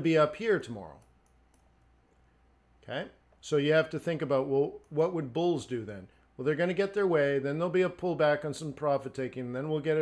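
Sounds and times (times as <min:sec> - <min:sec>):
man speaking: 0:00.0 - 0:01.0, 0:02.8 - 0:10.0
computer mouse clicks: 0:00.9 - 0:02.2.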